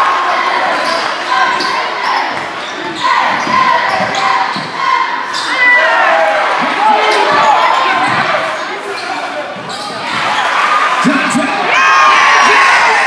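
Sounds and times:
crowd voices echoing: 0.0s - 13.0s
sneakers squeaking: 0.5s - 11.4s.

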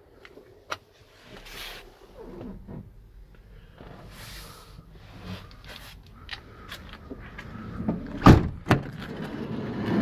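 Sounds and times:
sliding door rolling: 8.2s - 10.0s.

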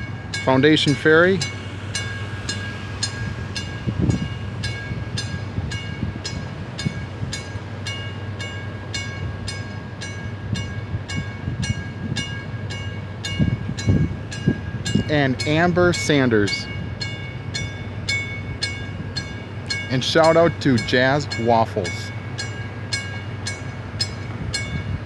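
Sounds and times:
warning bell ringing: 0.0s - 25.0s
wind rumble on microphone: 1.7s - 7.6s, 10.4s - 12.6s, 13.2s - 19.4s, 24.0s - 25.0s.

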